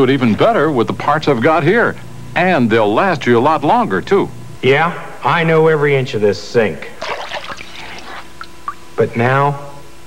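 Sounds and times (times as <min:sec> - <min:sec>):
water splashing in a sink: 0:07.0 - 0:08.8
water drips: 0:07.0 - 0:08.9.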